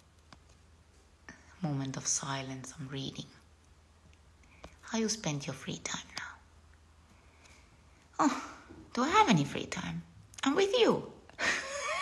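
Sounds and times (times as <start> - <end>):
faint low hum: 0.0 - 12.0
woman speaking: 1.4 - 3.4, 4.8 - 6.4, 8.2 - 11.2.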